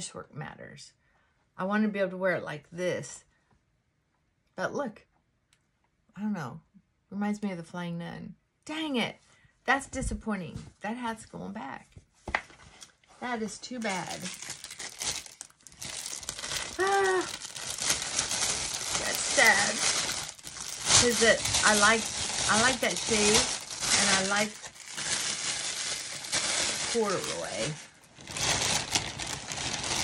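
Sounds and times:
plastic bag crinkling: 0:13.6 - 0:30.0.

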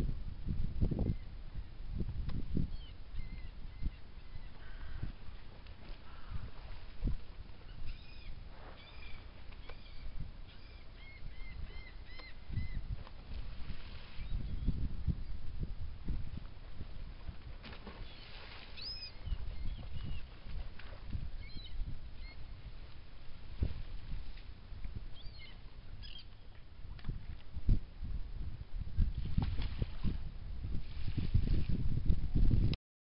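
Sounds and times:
birds chirping: 0:07.6 - 0:12.8, 0:18.0 - 0:20.3, 0:21.4 - 0:22.6, 0:25.1 - 0:26.6.

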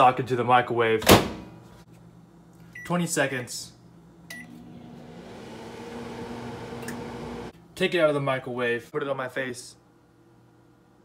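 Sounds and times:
microwave oven humming: 0:02.0 - 0:07.7, 0:09.8 - 0:11.0
microwave keypad beep: 0:04.3 - 0:04.6.

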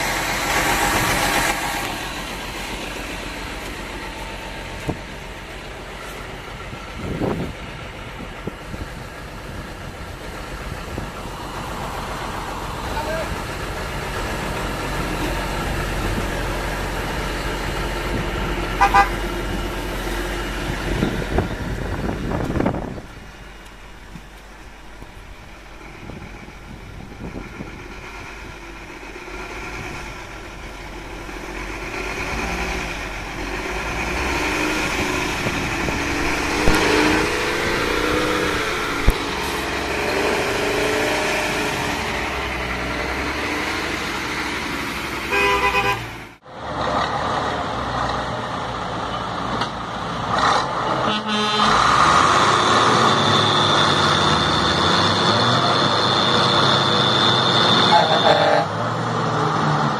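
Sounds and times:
truck churning through mud: 0:00.0 - 0:59.9
truck engine revving: 0:00.0 - 0:59.9
truck horn blast: 0:18.8 - 0:19.2, 0:45.3 - 0:46.2, 0:50.8 - 0:52.1, 0:55.4 - 0:58.9.

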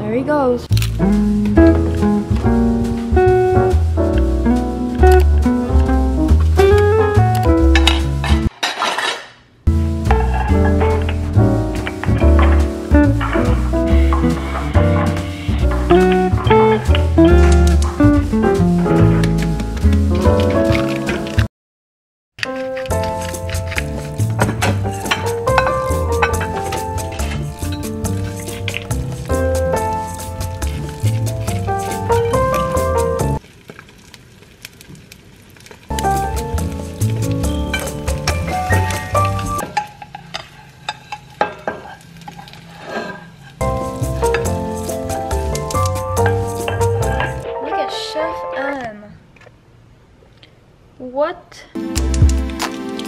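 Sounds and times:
background music: 0:00.0 - 0:08.5, 0:09.7 - 0:21.5, 0:22.4 - 0:33.4, 0:35.9 - 0:39.6, 0:43.6 - 0:49.2, 0:51.8 - 0:53.0
kitchenware clattering: 0:07.7 - 0:09.4, 0:10.1 - 0:18.3, 0:22.5 - 0:33.4, 0:37.4 - 0:42.4, 0:43.6 - 0:47.4.

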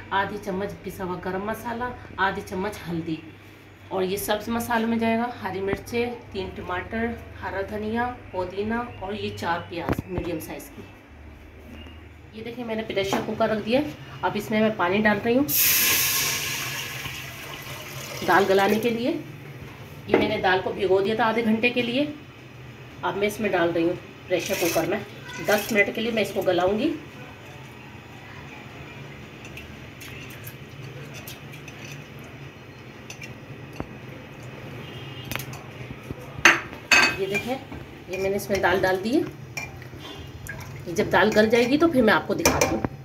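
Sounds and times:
water pouring into metal pot: 0:15.5 - 0:18.8.

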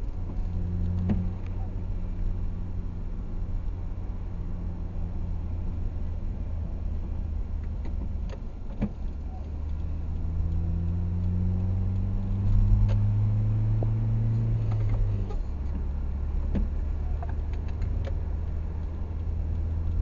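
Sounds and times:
car engine and road rumble: 0:00.0 - 0:20.0.

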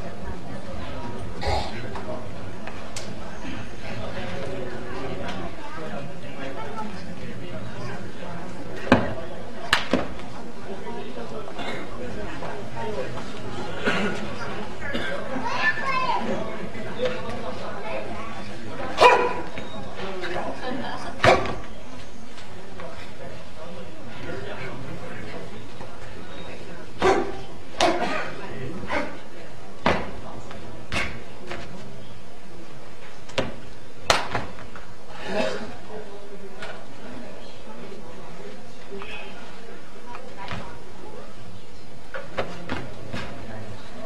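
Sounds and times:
crowd chatter: 0:00.0 - 0:44.0
dog barking: 0:19.0 - 0:19.4, 0:27.0 - 0:27.4.

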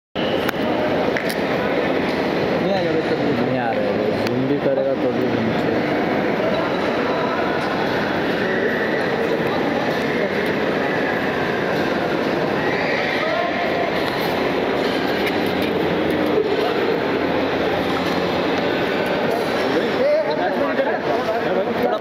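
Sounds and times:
indistinct voices: 0:00.2 - 0:22.0.

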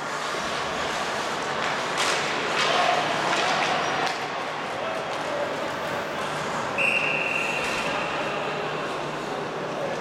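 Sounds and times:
skates scraping ice: 0:00.1 - 0:04.4
hockey stick clack: 0:01.5 - 0:04.4.

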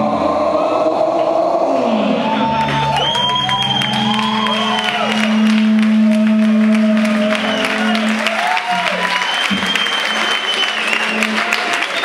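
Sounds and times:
crowd cheering and whooping: 0:00.0 - 0:12.0.

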